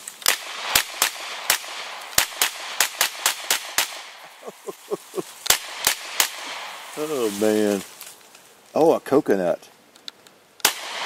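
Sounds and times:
rapid gunshots: 0.3 - 4.2, 5.5 - 6.9, 10.7 - 11.0.

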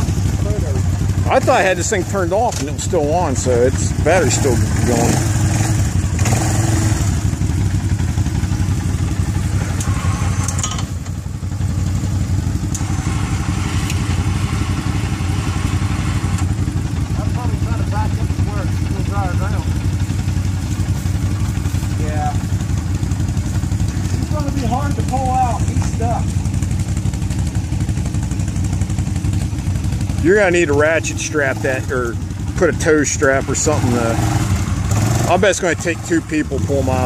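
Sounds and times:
quad bike engine running: 0.0 - 37.0.

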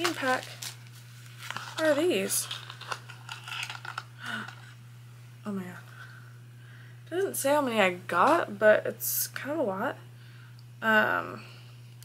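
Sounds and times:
cardboard box and plastic rustling: 0.0 - 4.7.

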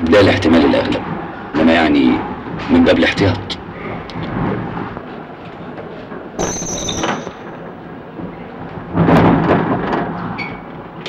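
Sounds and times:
busy background noise: 0.0 - 11.0
high-pitched squeal: 6.4 - 7.7.

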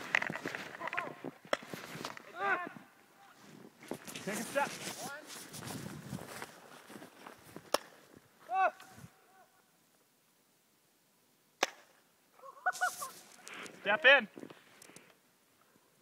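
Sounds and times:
paintball marker shots: 11.6 - 12.0.

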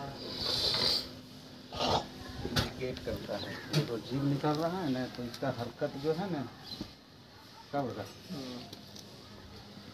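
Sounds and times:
snake hissing: 0.2 - 2.1.

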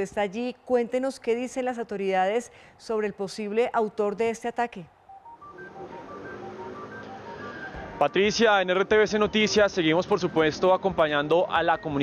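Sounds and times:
quiet electronic music: 5.1 - 12.0.

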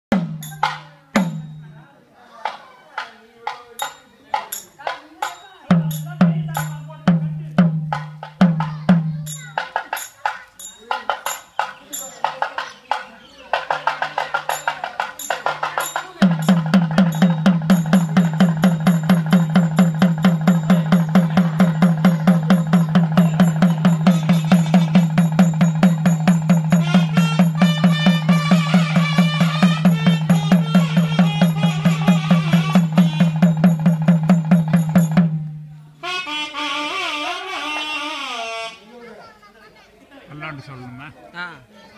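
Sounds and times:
drum beaten by hand: 0.1 - 1.8, 2.4 - 35.8.

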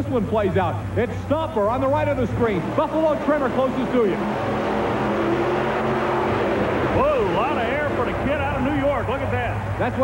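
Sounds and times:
monster truck engines running hard: 0.0 - 10.0.

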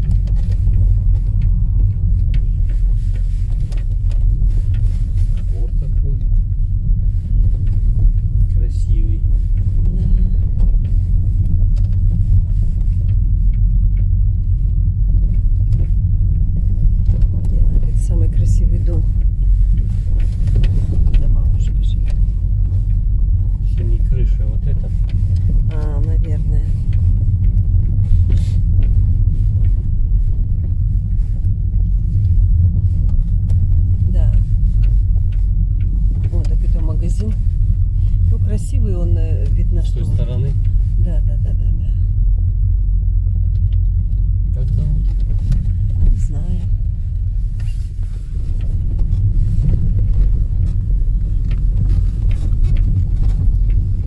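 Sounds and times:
car driving on dirt road: 0.0 - 54.0.

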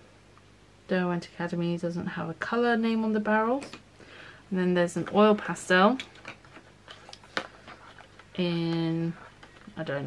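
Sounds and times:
cardboard rustling: 5.0 - 10.0.

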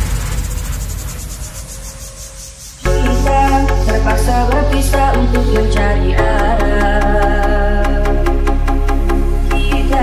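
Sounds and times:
buzzing high-pitched synth roll: 0.0 - 8.2.

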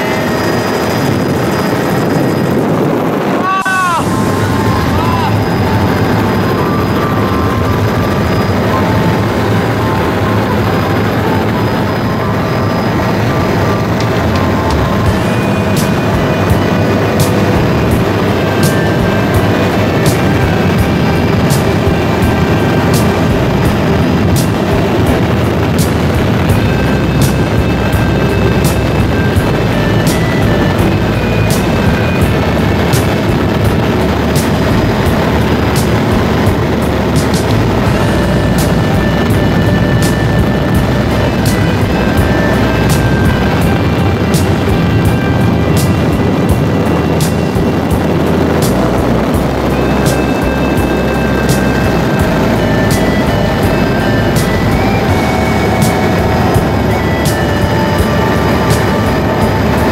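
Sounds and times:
helicopter cabin noise: 0.0 - 59.9
music playing: 0.0 - 59.9.

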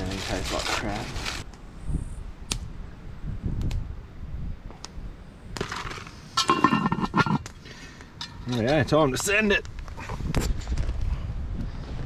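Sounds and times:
pot lid clanking metal on metal: 6.4 - 7.5.

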